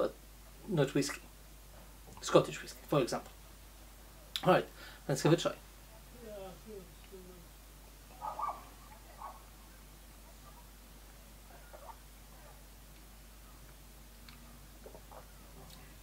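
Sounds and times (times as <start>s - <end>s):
mouth smacks and clicks: 13.7s - 15.9s.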